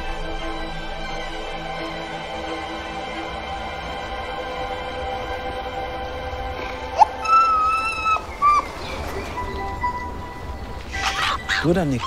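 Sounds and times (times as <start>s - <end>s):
fox calling: 6.6s - 9.6s, 10.8s - 12.0s
high-pitched fox whine: 7.0s - 8.7s.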